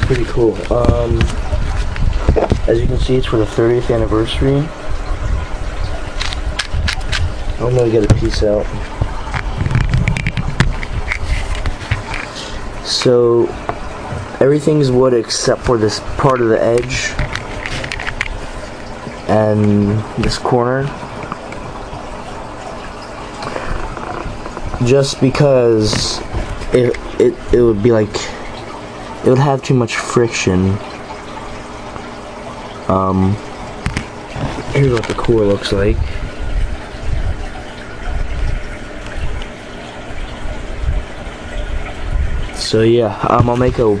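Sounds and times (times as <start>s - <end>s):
rumbling handling noise: 0.0s - 28.8s, 33.2s - 44.0s.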